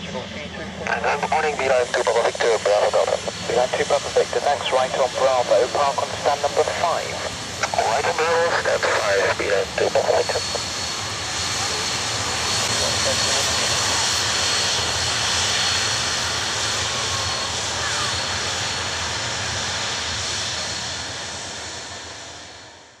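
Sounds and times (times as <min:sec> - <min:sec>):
jet airliner taxiing: 0:00.0 - 0:23.0.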